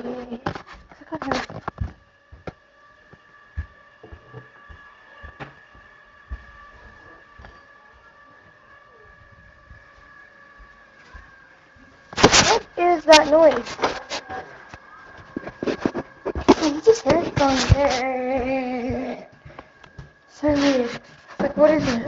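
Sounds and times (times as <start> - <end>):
faint steady whine: 0.0 - 22.0.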